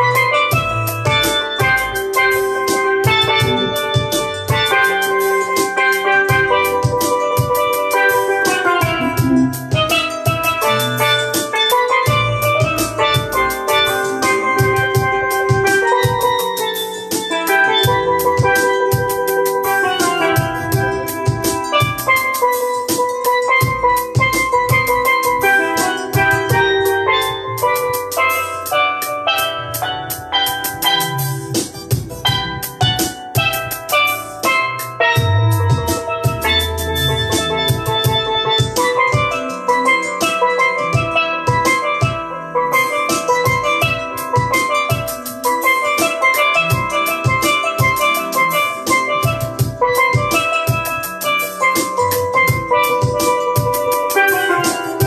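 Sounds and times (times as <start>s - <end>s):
bass line: 0.0s - 5.6s, 8.8s - 11.1s, 29.5s - 39.5s, 51.9s - 53.1s
drum kit beat: 0.0s - 55.0s
steel pan played with sticks: 0.0s - 55.0s.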